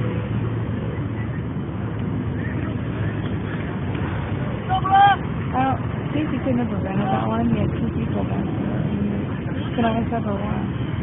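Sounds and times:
outdoor background noise: 0.0 - 11.0
person shouting: 4.7 - 5.2.

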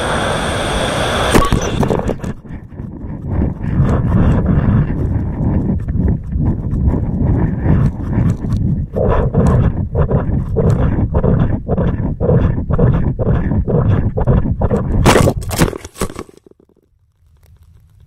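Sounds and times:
rumbling wind on microphone: 0.0 - 15.7.

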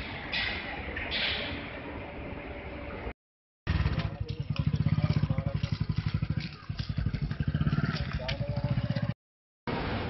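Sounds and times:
engine idling: 3.7 - 9.2.

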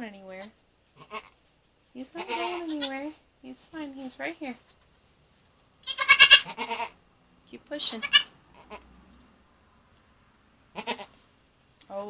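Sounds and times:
goat bleating: 1.0 - 1.4, 2.2 - 3.2, 5.8 - 7.0, 8.0 - 8.8, 10.7 - 11.2.

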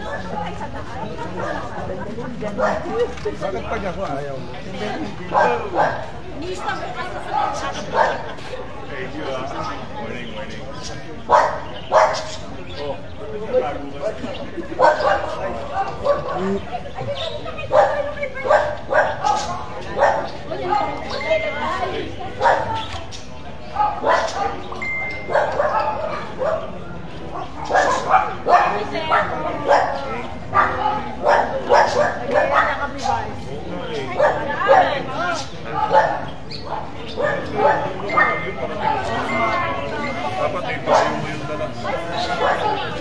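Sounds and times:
crowd talking: 0.0 - 43.0
dog barking: 2.6 - 3.0, 5.3 - 6.8, 7.4 - 8.3, 11.3 - 12.4, 14.8 - 15.4, 16.0 - 16.4, 17.7 - 20.4, 22.4 - 22.9, 23.8 - 26.7, 27.4 - 33.0, 34.2 - 35.0, 35.7 - 38.6, 40.9 - 41.2, 42.3 - 42.8.

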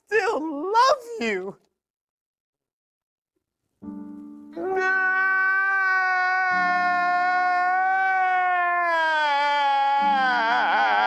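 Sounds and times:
exaggerated wailing cry: 4.6 - 11.0.

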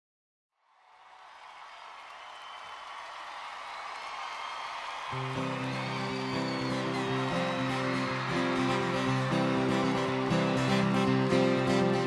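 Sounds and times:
crowd cheering and applause: 0.6 - 12.0.

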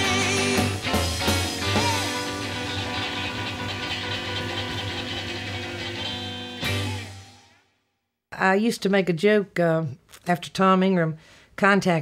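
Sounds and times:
rockabilly band playing: 0.0 - 7.4.

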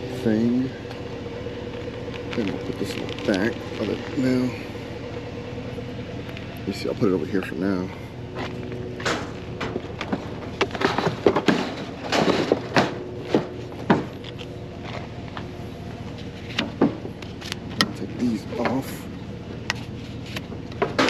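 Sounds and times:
steady low hum: 0.0 - 21.0
metal frame clanking and rattling: 8.3 - 15.1.

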